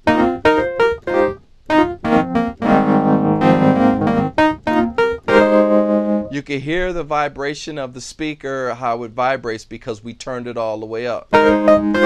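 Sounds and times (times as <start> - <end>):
fuzzy electric piano chord stabs: 0.0 - 6.4, 11.3 - 12.0.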